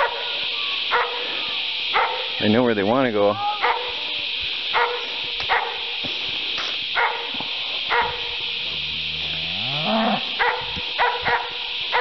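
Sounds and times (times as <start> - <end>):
steady high-pitched hiss: 0.0 - 12.0
footsteps on grass: 4.4 - 9.6.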